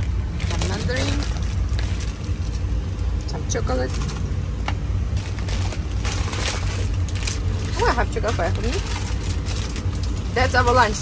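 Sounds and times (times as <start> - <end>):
road noise: 0.0 - 11.0
truck engine rumble: 0.0 - 11.0.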